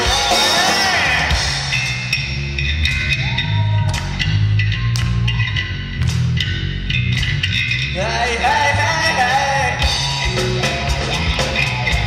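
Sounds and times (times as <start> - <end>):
bass guitar: 0.0 - 12.0
drums: 0.0 - 12.0
electric guitar: 0.0 - 12.0.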